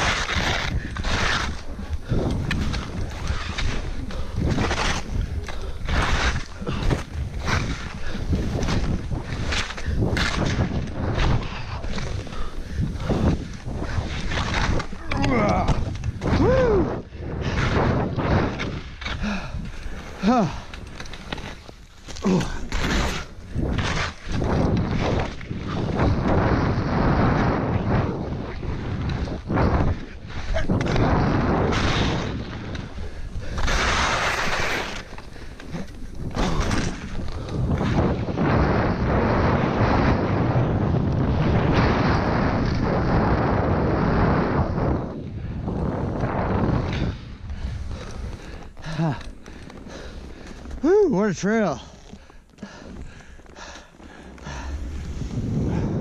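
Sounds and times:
skis scraping through snow: 0:00.0 - 0:56.0
wind on microphone: 0:00.0 - 0:56.0
person grunting: 0:20.2 - 0:20.7.

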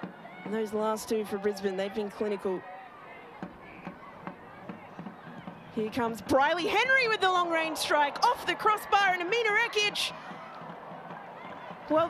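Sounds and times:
distant voices of players and crowd: 0:00.0 - 0:12.0.

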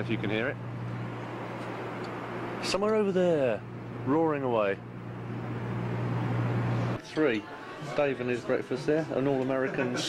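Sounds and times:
low steady hum: 0:00.0 - 0:09.9.

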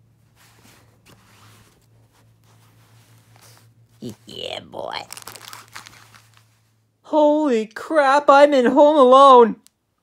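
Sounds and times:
rustling of toys and fabric: 0:00.0 - 0:06.9
low steady hum: 0:00.0 - 0:10.0.

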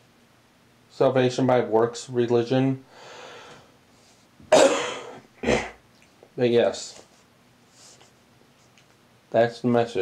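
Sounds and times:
faint breath: 0:02.9 - 0:04.3
man coughing: 0:04.5 - 0:05.8.

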